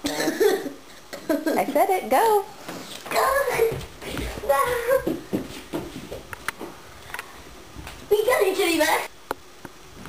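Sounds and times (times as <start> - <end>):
footsteps on wooden floor: 2.6 - 6.8
child's voice: 3.1 - 5.2, 8.1 - 9.1.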